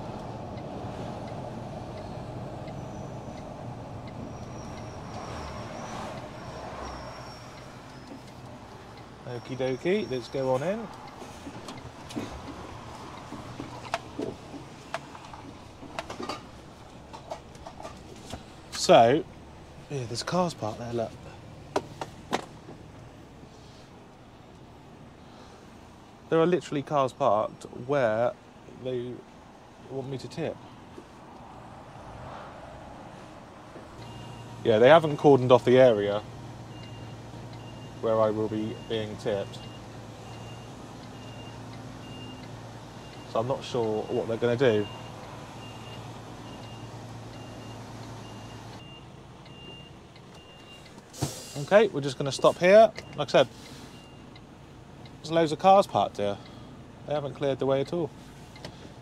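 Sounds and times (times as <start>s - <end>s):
diesel engine running low: 0.0s - 26.3s, 32.8s - 59.0s
high warning beep: 34.0s - 34.6s.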